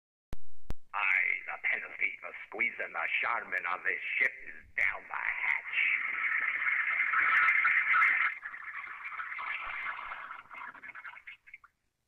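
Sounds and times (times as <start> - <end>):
toilet flush over tinny loudspeaker: 5.1 - 11.7.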